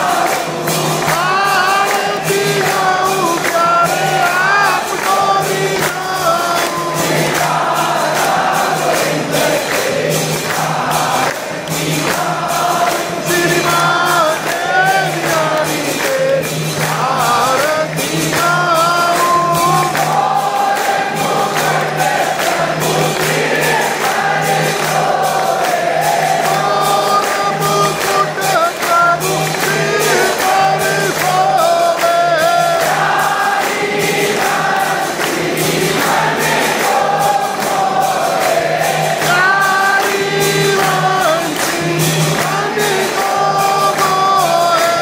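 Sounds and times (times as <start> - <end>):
group singing a hymn: 0.0 - 45.0
struck percussion beat: 0.0 - 45.0.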